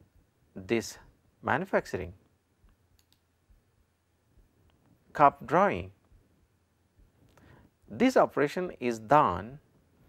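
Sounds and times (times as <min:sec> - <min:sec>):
man speaking: 0:00.5 - 0:02.2, 0:05.1 - 0:06.0, 0:07.8 - 0:09.6.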